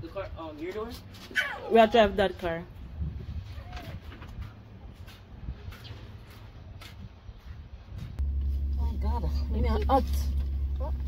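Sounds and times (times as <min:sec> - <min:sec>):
car engine rumbling from inside: 0:08.2 - 0:11.0.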